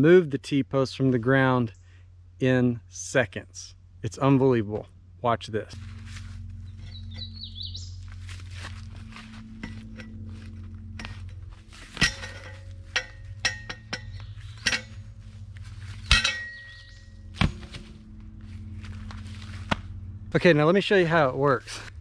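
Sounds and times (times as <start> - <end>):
metal post clinking: 9.3 - 18.0.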